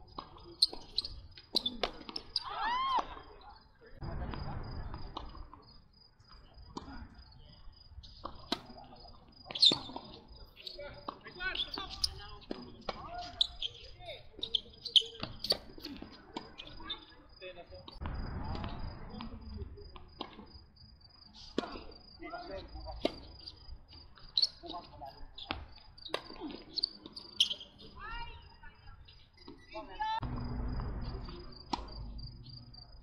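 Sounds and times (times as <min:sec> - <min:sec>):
insects chirping: 0:00.0 - 0:33.0.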